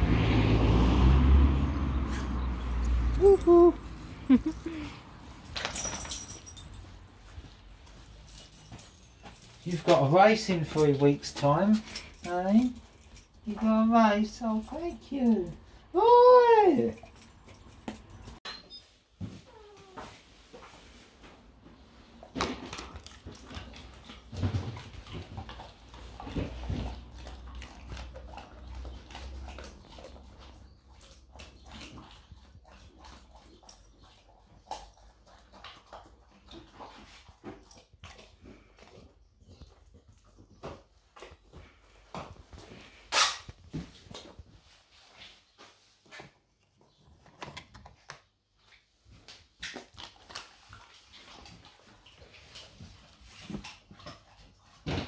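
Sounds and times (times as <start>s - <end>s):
dog chewing treat: 22.6s - 41.8s.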